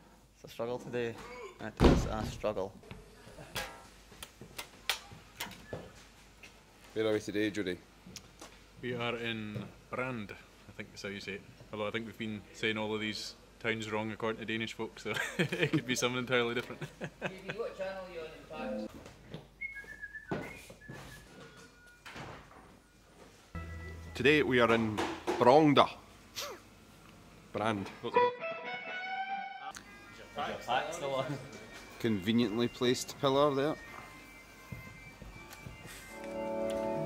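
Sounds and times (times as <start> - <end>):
person speaking: 18.4 - 18.9.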